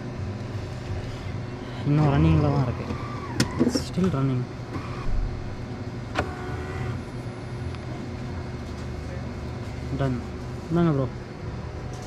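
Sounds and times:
coffee machine humming: 0:00.0 - 0:12.0.

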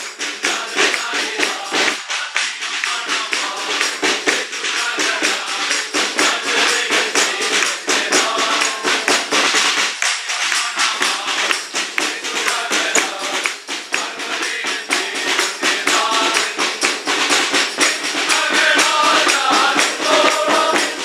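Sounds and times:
carolers singing: 0:00.0 - 0:21.0
jingling tambourine-like rattle: 0:00.0 - 0:21.0
hand drum struck with sticks: 0:02.8 - 0:21.0.

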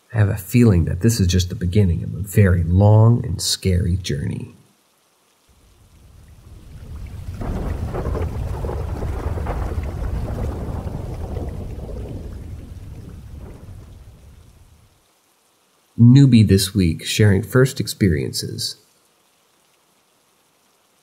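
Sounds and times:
rain: 0:00.0 - 0:21.0
thunder rolling: 0:06.0 - 0:14.8.

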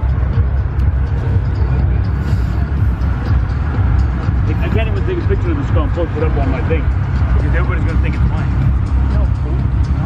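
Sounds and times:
car engine running: 0:00.0 - 0:10.0
people's voices: 0:00.4 - 0:10.0.

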